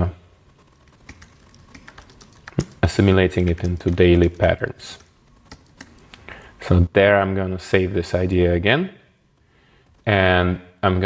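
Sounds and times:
computer keyboard typing: 0:00.5 - 0:06.6, 0:09.4 - 0:10.2.

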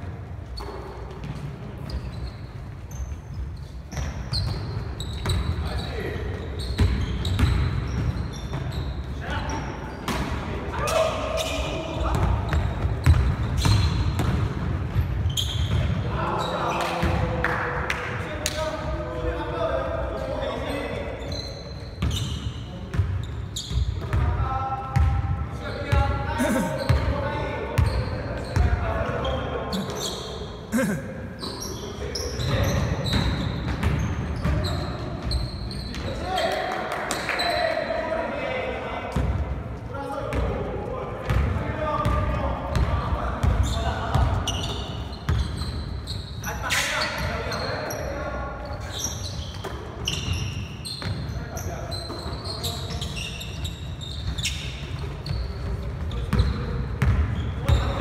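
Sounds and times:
players calling out: 0:26.2 - 0:27.1, 0:29.7 - 0:31.8.

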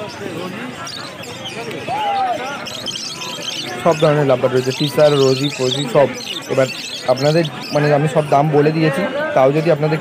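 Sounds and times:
lovebirds chirping and chattering: 0:00.0 - 0:10.0
people's voices: 0:00.0 - 0:10.0.

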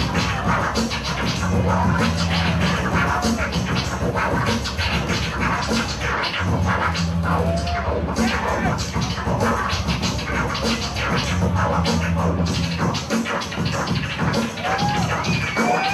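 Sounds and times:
beat: 0:00.0 - 0:15.9
vinyl record scratching: 0:00.0 - 0:15.9.

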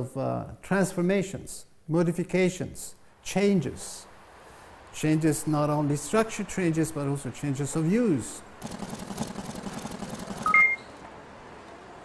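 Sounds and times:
faint steady hiss: 0:00.0 - 0:08.5
two-tone electronic beeps: 0:10.4 - 0:11.0.

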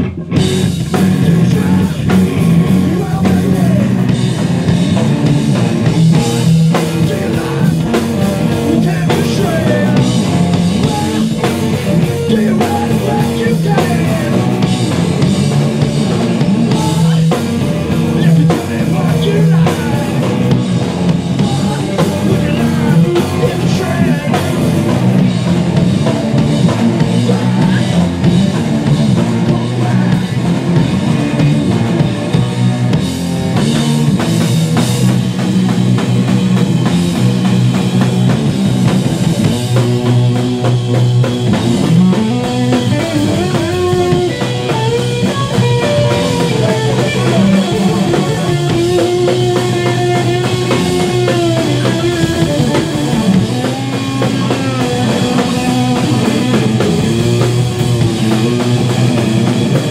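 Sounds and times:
bass guitar: 0:00.0 - 0:59.9
drum kit: 0:00.0 - 0:59.9
electric guitar: 0:00.0 - 0:59.9
rock band playing live: 0:00.0 - 0:59.9.

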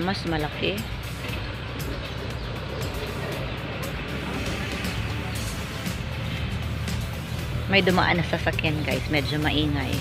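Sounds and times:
background music: 0:00.0 - 0:10.0
vehicle passing by: 0:00.0 - 0:10.0.

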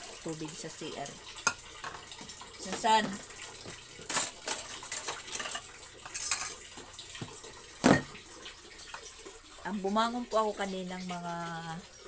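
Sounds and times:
kitchenware clinking and clattering: 0:01.2 - 0:08.2.

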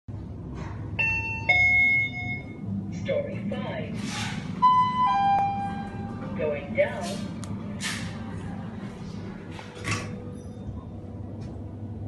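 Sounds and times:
low background hum: 0:00.1 - 0:12.0
elevator two-note chime: 0:01.0 - 0:02.6, 0:04.6 - 0:06.1.

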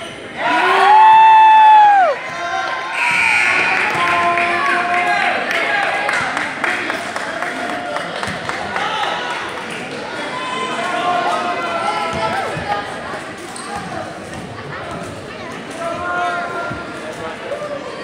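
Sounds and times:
spectators chattering: 0:00.0 - 0:18.0.

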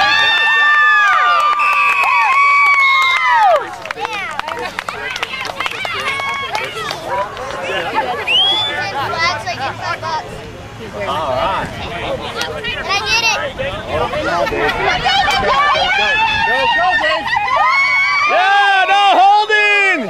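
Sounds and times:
crowd shouting: 0:00.0 - 0:20.0
babble of many voices: 0:03.6 - 0:19.6.

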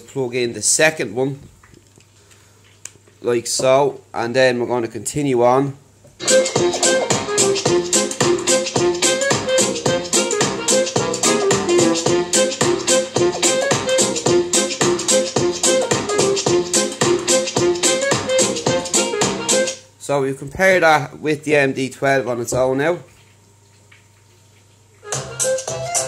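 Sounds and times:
fast beat music over speakers: 0:06.2 - 0:19.8, 0:25.0 - 0:26.0.

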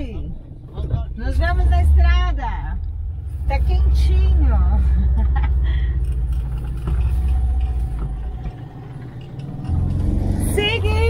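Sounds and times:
car engine from inside cabin: 0:00.0 - 0:11.0
road rumble: 0:00.0 - 0:11.0.

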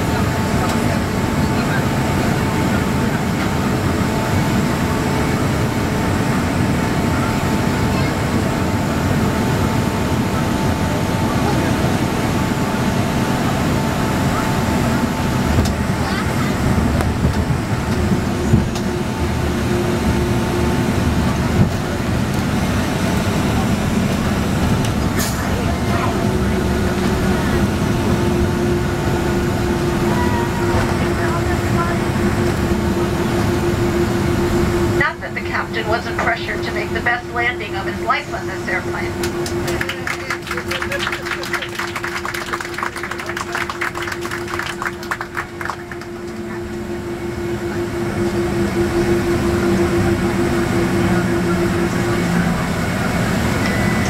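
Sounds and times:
jet engines and airflow rumble: 0:00.0 - 0:54.0
low hum: 0:00.0 - 0:54.0
thin whine: 0:29.6 - 0:54.0.

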